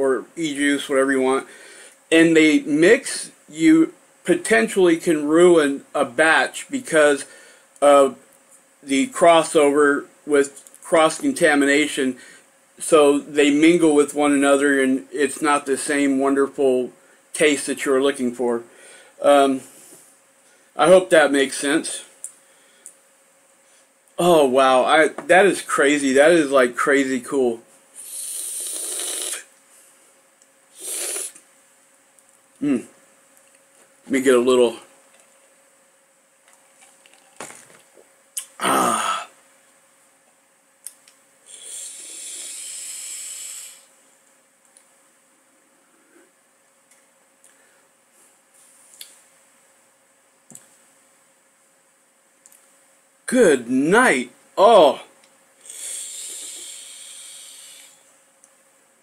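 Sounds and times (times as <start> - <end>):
airy hiss of e-cigarette draw: 28.0 - 29.5, 30.7 - 31.4, 41.5 - 43.9, 55.6 - 58.1.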